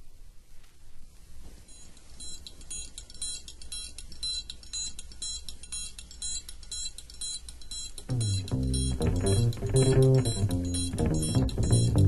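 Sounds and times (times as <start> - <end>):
vinyl surface noise: 0.0 - 12.0
high ringing percussion: 1.7 - 12.0
low hum: 8.1 - 12.0.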